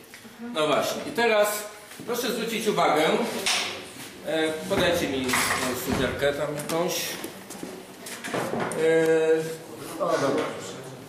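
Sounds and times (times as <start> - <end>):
objects knocking and rustling: 4.7 - 8.8.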